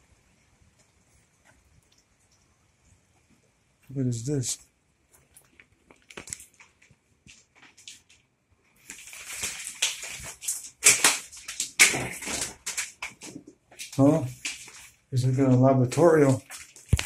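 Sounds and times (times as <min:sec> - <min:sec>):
plastic strip curtain rustling: 0:05.3 - 0:17.0.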